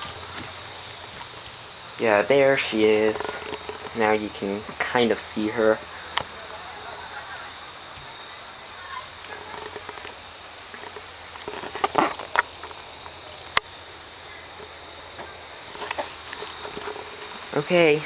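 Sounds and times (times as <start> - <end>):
faint distant voices: 0.0 - 18.0
steady hiss: 0.0 - 18.0.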